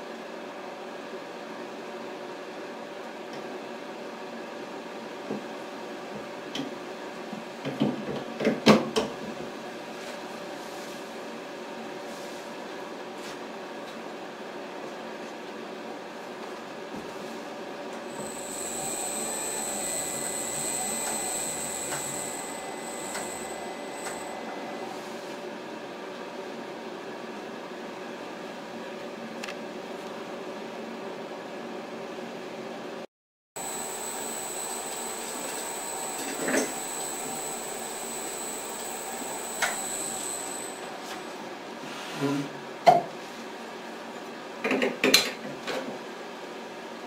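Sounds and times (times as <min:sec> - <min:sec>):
polishing machine grinding glass: 0:18.1 - 0:24.5, 0:33.6 - 0:40.9
high steady squeal: 0:18.1 - 0:25.3, 0:33.6 - 0:41.3
thin high whine: 0:18.1 - 0:25.5, 0:33.6 - 0:41.4.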